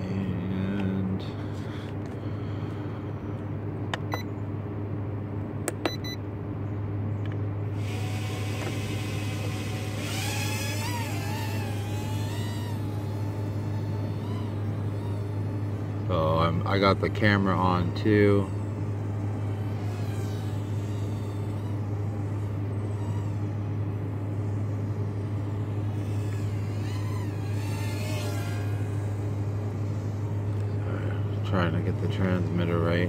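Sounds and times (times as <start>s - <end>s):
steady low hum: 0.0s - 33.0s
short clicks with beeps: 3.9s - 4.3s, 5.7s - 6.2s
drone motors whining: 7.2s - 33.0s.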